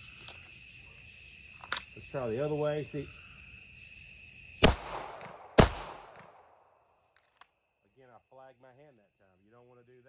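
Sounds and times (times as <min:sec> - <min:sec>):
crickets chirping: 0:00.0 - 0:10.0
pistol shots with echo: 0:04.6 - 0:06.7.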